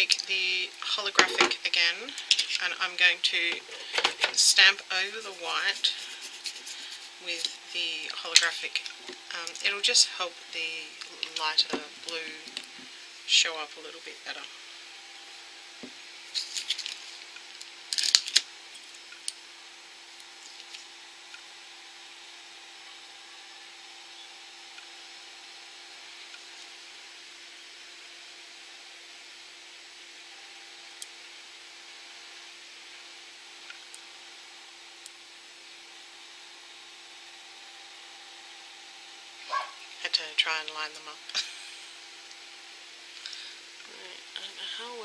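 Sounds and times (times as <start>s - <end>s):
faint steady hum: 0.0s - 45.0s
scraper rasping across metal plate: 5.2s - 7.2s.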